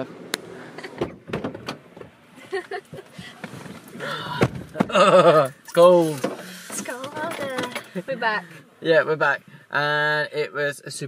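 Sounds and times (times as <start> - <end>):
person gasping: 4.0 - 4.5.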